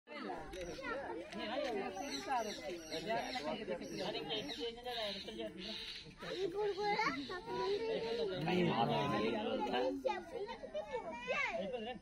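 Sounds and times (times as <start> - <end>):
overlapping voices talking: 0.1 - 11.2.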